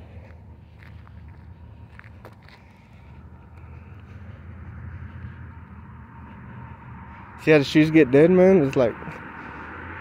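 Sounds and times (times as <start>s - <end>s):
road traffic rumble: 0.0s - 10.0s.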